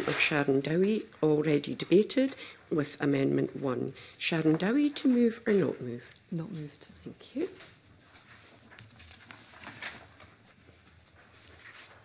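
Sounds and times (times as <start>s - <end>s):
papers rustling: 7.3s - 12.0s.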